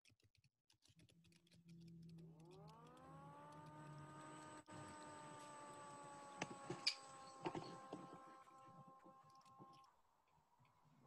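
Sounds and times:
low hum: 0:01.6 - 0:11.0
rising motor tones: 0:01.7 - 0:10.0.

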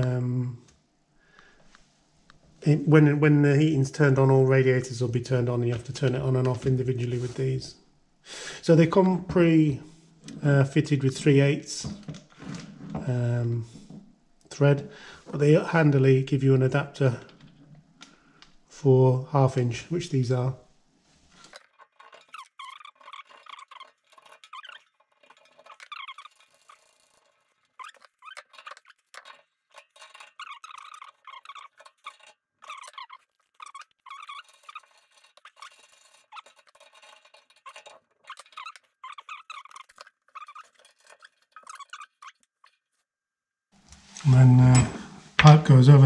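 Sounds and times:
brass fittings squeaking and clicking: 0:21.1 - 0:43.1.

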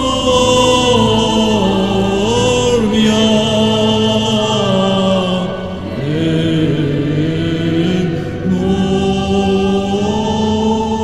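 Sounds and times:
choir chanting in a church: 0:00.0 - 0:11.0.

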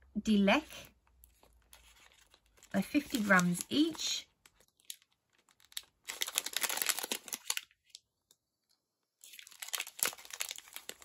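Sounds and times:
foil wrappers crinkling: 0:01.2 - 0:08.0, 0:09.2 - 0:11.0.

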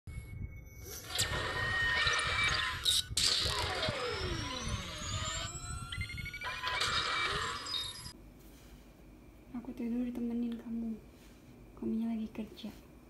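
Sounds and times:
electronic intro music: 0:00.2 - 0:08.2.

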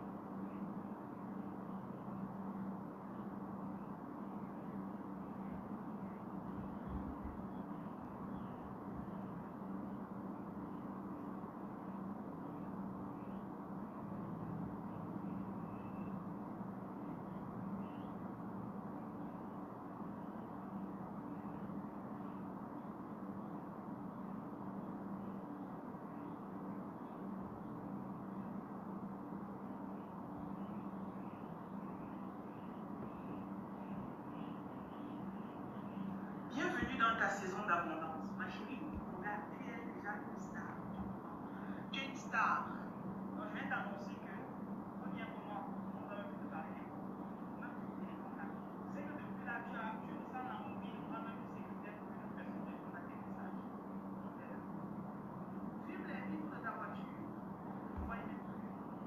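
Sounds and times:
constant low hum: 0:00.0 - 0:59.0
faint high chirps: 0:14.9 - 0:16.3.

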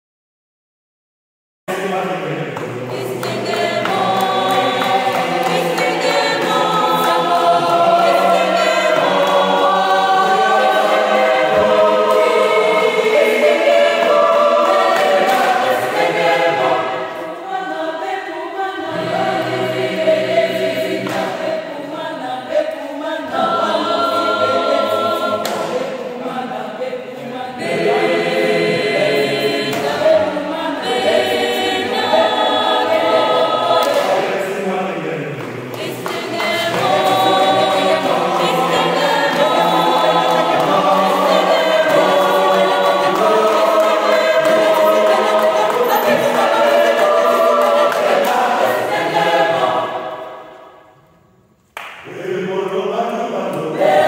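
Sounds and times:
mixed choir singing a cappella: 0:01.7 - 0:51.0, 0:51.9 - 0:54.0.

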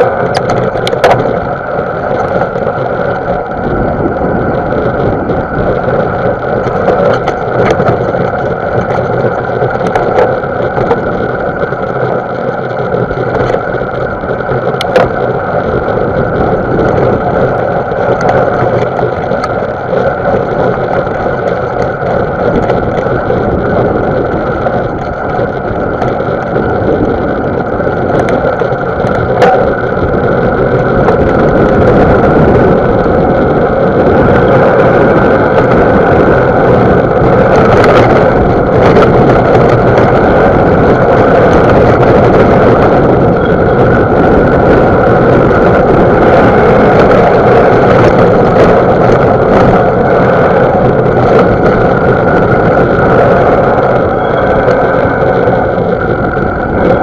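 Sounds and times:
bike tyres rolling on dirt: 0:00.0 - 0:57.0
wind on microphone: 0:00.0 - 0:57.0.

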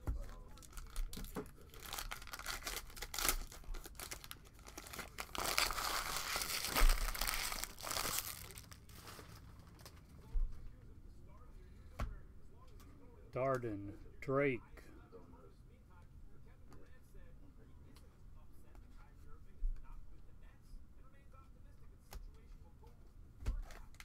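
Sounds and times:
plastic wrapper crinkling and tearing: 0:00.2 - 0:10.0.

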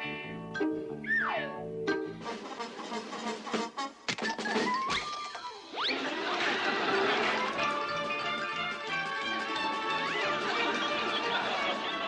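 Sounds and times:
cartoon chase music: 0:01.0 - 0:12.0.

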